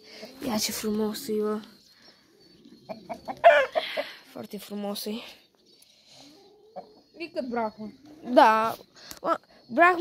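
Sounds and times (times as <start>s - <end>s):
rooster clucking: 2.8s - 4.2s, 6.6s - 7.1s
rooster squawk: 3.1s - 4.1s.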